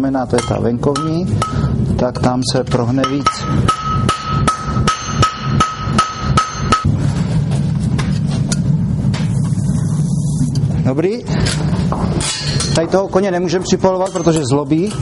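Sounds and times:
steady low hum: 0:00.0 - 0:15.0
hammer striking horseshoe on anvil: 0:00.3 - 0:01.8, 0:02.7 - 0:06.9, 0:14.0 - 0:15.0.

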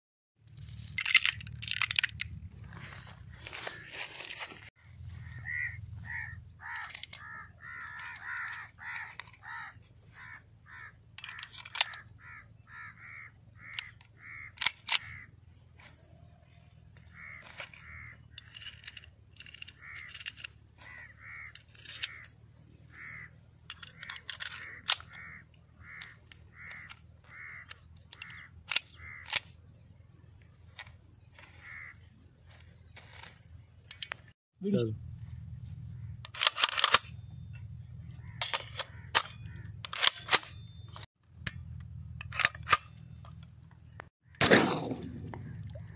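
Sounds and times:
gun parts clicking: 0:00.6 - 0:02.4, 0:06.7 - 0:09.6, 0:11.2 - 0:12.1, 0:13.6 - 0:15.2, 0:17.2 - 0:29.5, 0:36.2 - 0:37.6, 0:38.4 - 0:43.5
crow cawing: 0:05.1 - 0:15.3, 0:17.0 - 0:18.5, 0:19.7 - 0:29.3, 0:31.4 - 0:32.1.

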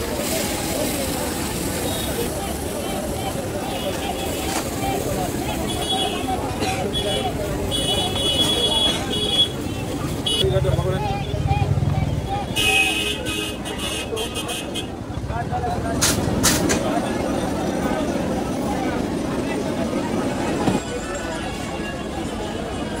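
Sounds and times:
street traffic: 0:00.0 - 0:23.0
vehicle horns tooting: 0:03.3 - 0:11.4, 0:12.4 - 0:15.1.

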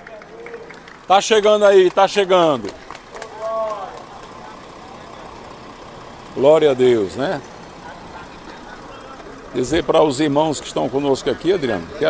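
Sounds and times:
faint crowd voices: 0:00.0 - 0:12.0
low engine hum: 0:00.0 - 0:12.0.

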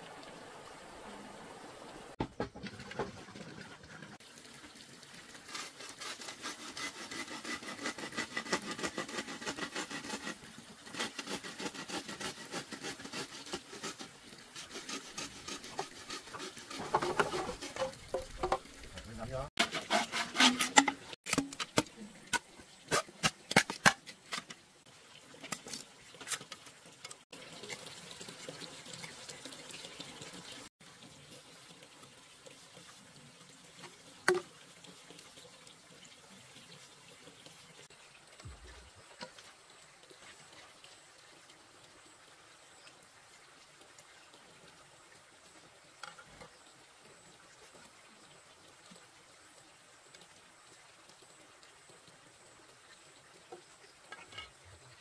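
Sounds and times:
bamboo tubes knocking: 0:15.2 - 0:18.7.

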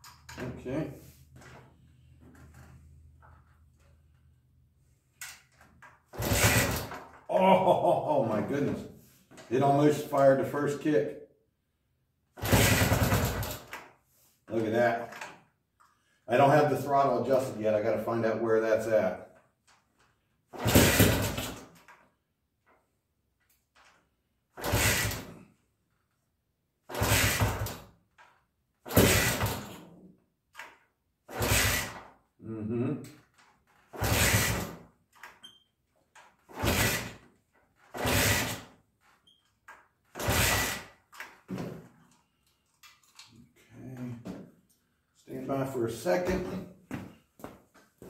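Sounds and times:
motorcycle engine kick-start cranking: 0:06.2 - 0:07.2, 0:12.4 - 0:13.7, 0:20.6 - 0:21.7, 0:24.6 - 0:25.3, 0:26.9 - 0:27.9, 0:28.9 - 0:29.8.

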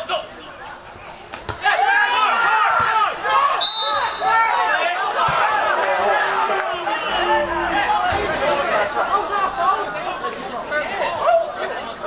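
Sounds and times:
referee's whistle blast: 0:03.5 - 0:04.4.

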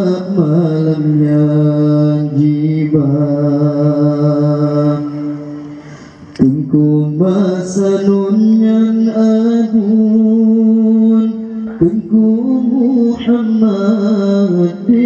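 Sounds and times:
man chanting into a microphone: 0:00.0 - 0:15.0.

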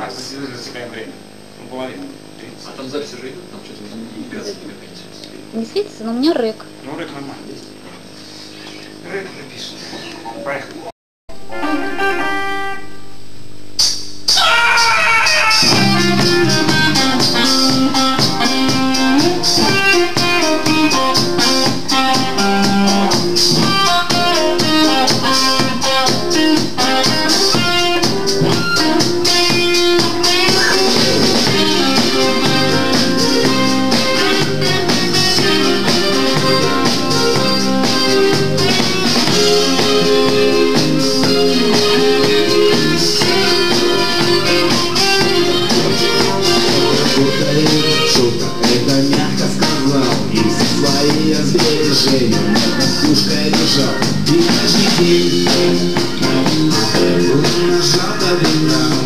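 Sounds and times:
electric guitar riff: 0:00.0 - 0:59.0
drum kit steady beat: 0:13.6 - 0:59.0
keyboard: 0:14.3 - 0:59.0.

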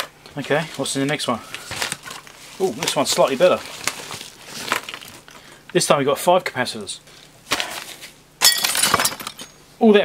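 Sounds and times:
plastic packaging crackling: 0:00.0 - 0:05.6.

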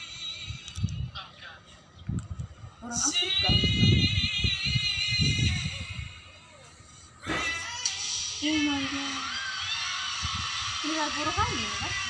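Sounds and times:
low muffled voices: 0:00.8 - 0:12.0.

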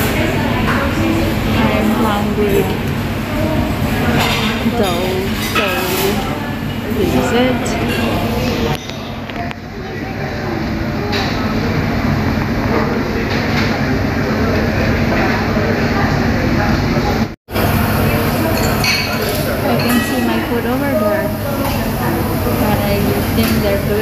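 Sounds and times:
diners chatting: 0:00.0 - 0:24.0
dishes and cutlery clinking: 0:04.1 - 0:09.1, 0:18.4 - 0:20.9.

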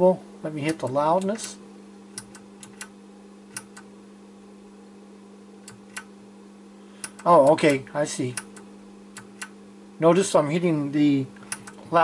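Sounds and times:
steady low hum: 0:00.0 - 0:12.0
pushbutton clicks: 0:02.2 - 0:02.9, 0:03.5 - 0:03.9, 0:05.6 - 0:06.1, 0:07.0 - 0:08.6, 0:11.4 - 0:11.8.

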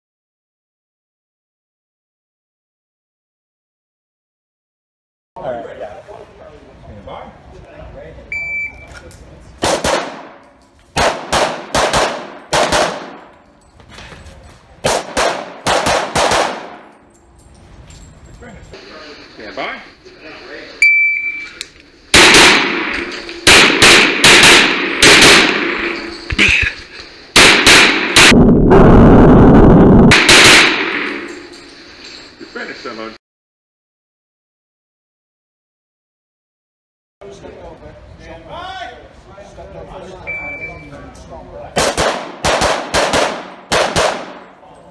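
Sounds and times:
shot timer beep: 0:08.3 - 0:08.9, 0:20.8 - 0:21.6, 0:40.3 - 0:40.9
rapid pistol fire with echo: 0:09.6 - 0:10.4, 0:11.0 - 0:13.3, 0:14.8 - 0:16.9, 0:22.1 - 0:26.1, 0:27.4 - 0:28.4, 0:30.1 - 0:31.3, 0:41.8 - 0:44.5
loud drawn-out rumble: 0:22.1 - 0:31.4.

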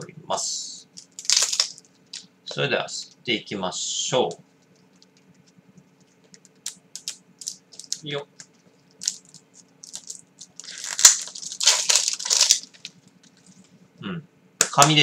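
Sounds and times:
cellophane wrapper crinkling: 0:01.0 - 0:02.3, 0:06.0 - 0:13.6.

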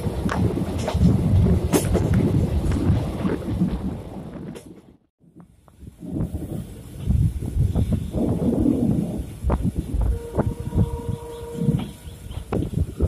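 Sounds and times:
train rumbling on track: 0:00.0 - 0:13.0.

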